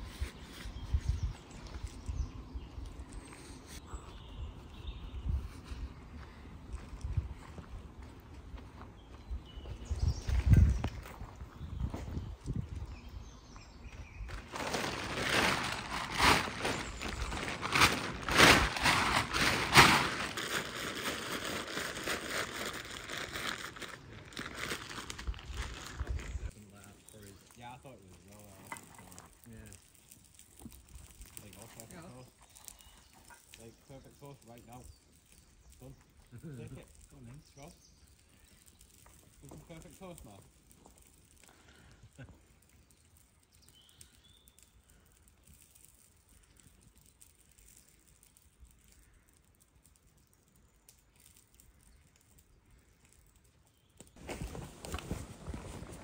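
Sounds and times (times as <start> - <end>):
nylon gear rustling and crinkling: 14.2 - 56.0.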